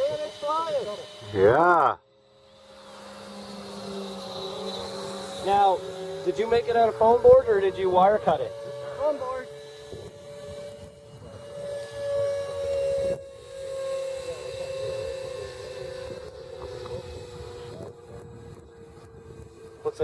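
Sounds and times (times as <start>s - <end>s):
electric ducted fan whine: 0.0s - 20.0s.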